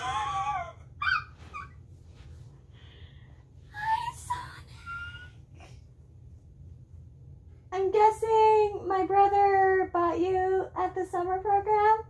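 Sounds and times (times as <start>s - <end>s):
woman squeaking: 0.0s - 1.8s
quiet breathing: 2.2s - 4.0s.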